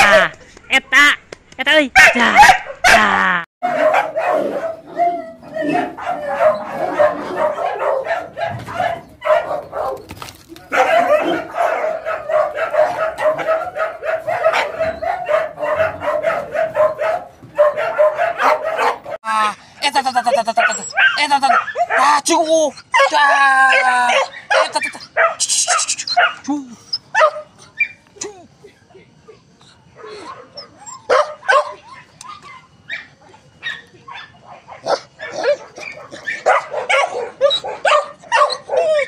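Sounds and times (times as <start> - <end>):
dogs barking and yipping: 2.0 - 19.2, 20.2 - 28.2, 28.9 - 39.0.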